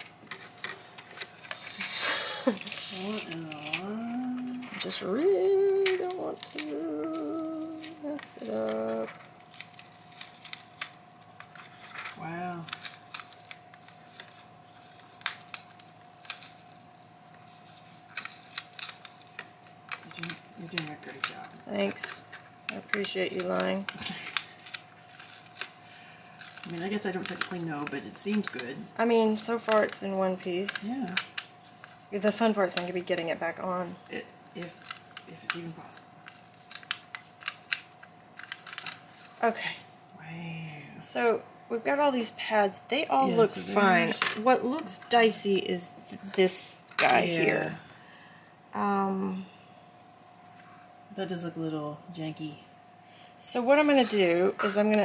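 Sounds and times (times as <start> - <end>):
plastic sheets crinkling: 0.0 - 33.9, 34.5 - 39.4
faint high hum: 0.0 - 55.0
person humming: 1.6 - 9.1.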